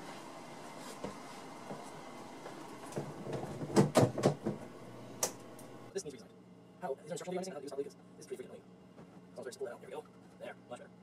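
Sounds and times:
objects knocking and clattering: 3.0 - 4.7.

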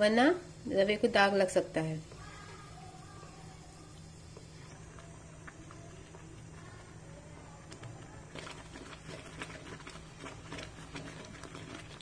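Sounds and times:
porridge bubbling in a pot: 0.0 - 12.0.

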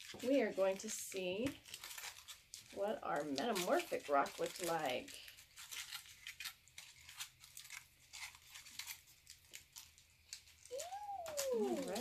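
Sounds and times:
foil crinkling: 0.0 - 12.0.

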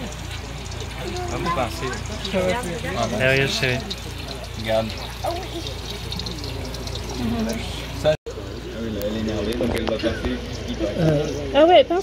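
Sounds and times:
aquarium water bubbling: 0.0 - 12.0.

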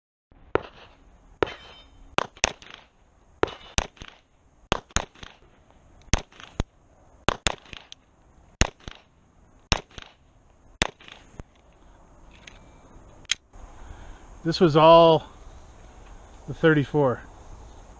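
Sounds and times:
faint outdoor background: 0.3 - 17.9
pistol shots: 0.5 - 5.4, 6.1 - 6.6, 7.3 - 8.0, 8.6 - 9.1, 9.7 - 10.2, 10.8 - 11.3
sharp crack: 0.5 - 11.7.

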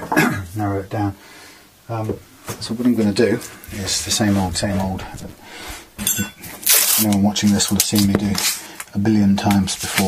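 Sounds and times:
masking tape ripping off roll: 6.6 - 8.6.

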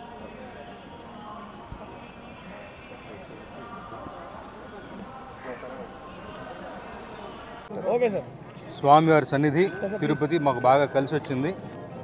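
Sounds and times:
people talking indistinctly: 0.0 - 12.0.

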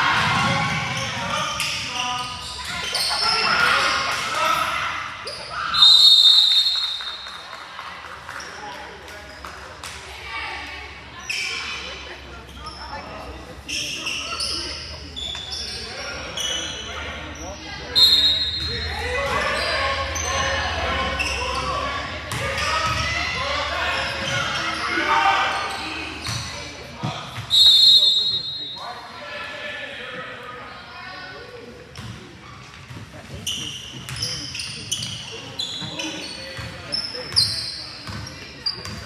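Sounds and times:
sneakers squeaking: 0.1 - 7.5, 8.3 - 10.0, 10.6 - 29.1, 31.5 - 39.0
spectators' voices: 6.8 - 27.4.

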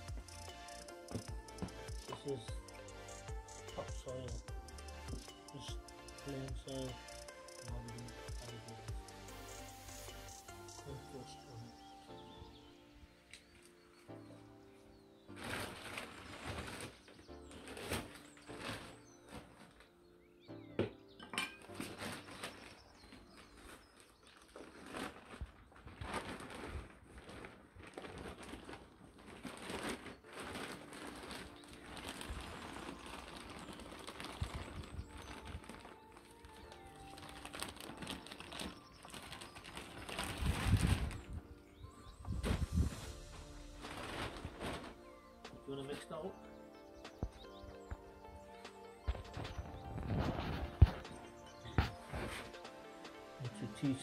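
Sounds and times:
background music: 0.0 - 25.2, 26.2 - 54.0
plastic bag crinkling: 15.3 - 19.9, 21.6 - 46.3
dull low thuds: 42.2 - 44.6.

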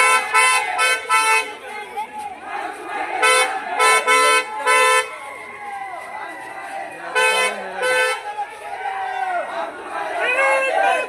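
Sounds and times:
crowd of men shouting: 0.0 - 11.0
vehicle horn toots: 3.2 - 5.2, 7.2 - 8.3.

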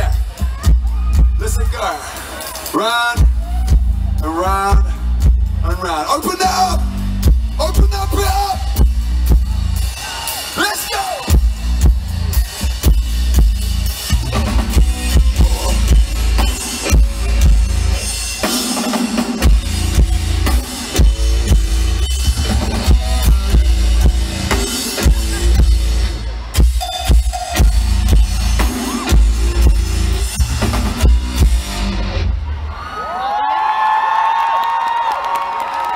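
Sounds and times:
heavy drum kit: 0.0 - 32.6
bass guitar: 0.0 - 32.8
rock band playing live: 0.0 - 32.8
crowd cheering: 0.1 - 6.7, 9.2 - 13.2, 27.4 - 35.9.

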